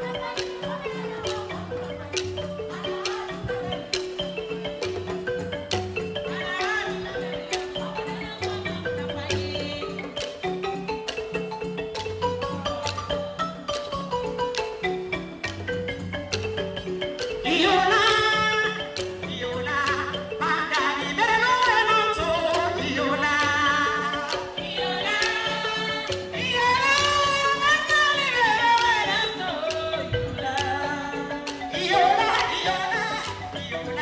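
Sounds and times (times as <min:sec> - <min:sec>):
person singing: 0:00.0 - 0:03.8, 0:17.5 - 0:34.0
high wavering vocal cry: 0:00.0 - 0:03.9, 0:17.5 - 0:34.0
balafon melody: 0:00.0 - 0:34.0
djembe strikes: 0:00.0 - 0:34.0
hand drum ensemble: 0:00.0 - 0:34.0.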